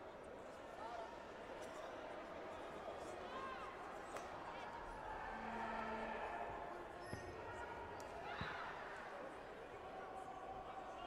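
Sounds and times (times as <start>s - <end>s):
sports hall background din: 0.0s - 11.0s.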